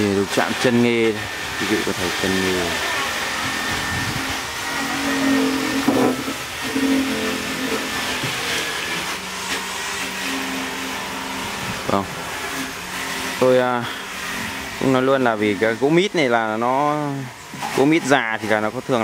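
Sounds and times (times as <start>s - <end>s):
motor whine: 0.0s - 19.0s.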